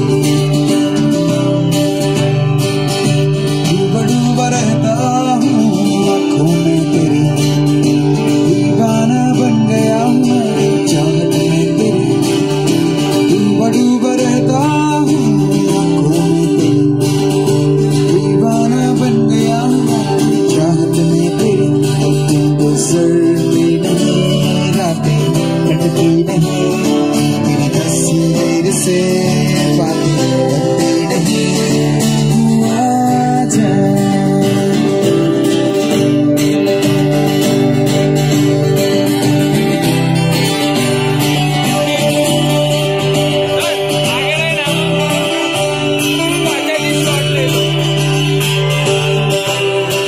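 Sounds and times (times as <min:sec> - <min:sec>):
acoustic guitars strumming: 0:00.0 - 0:50.0
person singing: 0:03.2 - 0:36.8.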